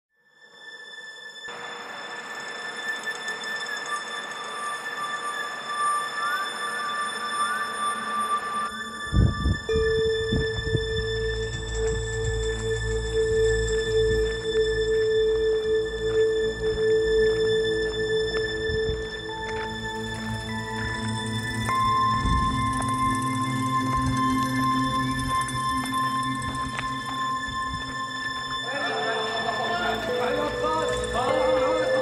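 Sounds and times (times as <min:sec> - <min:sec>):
ambient music of held tones: 0:00.4 - 0:32.0
low drone: 0:01.5 - 0:32.0.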